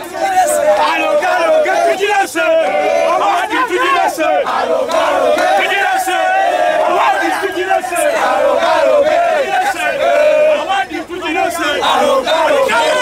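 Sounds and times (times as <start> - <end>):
large crowd shouting: 0.0 - 13.0.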